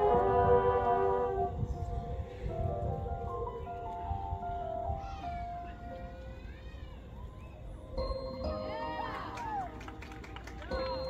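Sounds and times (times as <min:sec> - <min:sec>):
marching band brass chord: 0:00.0 - 0:01.6.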